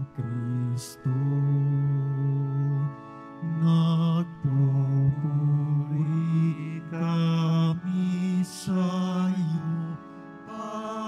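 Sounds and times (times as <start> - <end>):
held low accompanying notes: 0.0 - 11.0
slow chant-like singing: 0.0 - 11.0.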